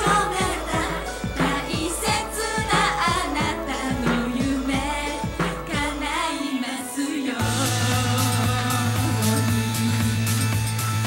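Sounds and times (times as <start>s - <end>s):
fast drum beat: 0.0s - 6.3s, 7.4s - 11.0s
women singing pop song: 0.0s - 11.0s.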